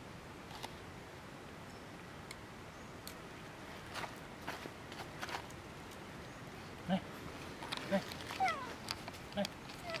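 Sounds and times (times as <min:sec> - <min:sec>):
monkey high calls: 0:07.9 - 0:08.8.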